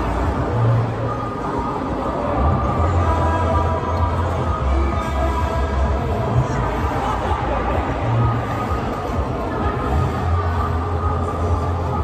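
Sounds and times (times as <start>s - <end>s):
dense background noise: 0.0s - 12.0s.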